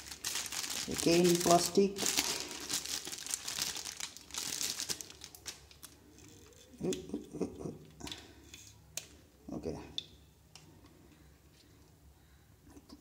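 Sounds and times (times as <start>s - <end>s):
plastic bag crinkling: 0.0s - 6.9s.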